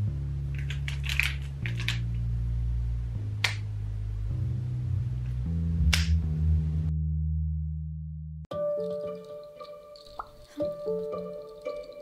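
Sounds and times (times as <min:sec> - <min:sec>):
background music with bass: 0:00.0 - 0:09.1.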